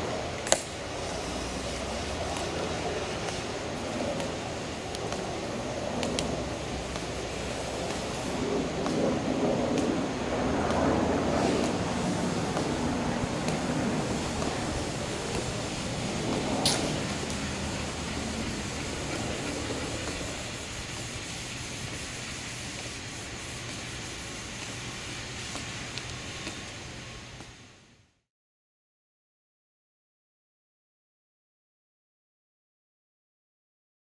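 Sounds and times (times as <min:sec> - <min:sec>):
low rumble with hiss: 0:00.0 - 0:28.2.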